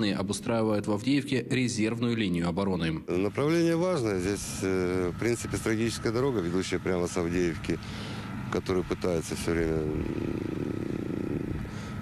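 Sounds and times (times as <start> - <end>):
steady low background hum: 0.0 - 12.0
vehicle engine running: 3.1 - 12.0.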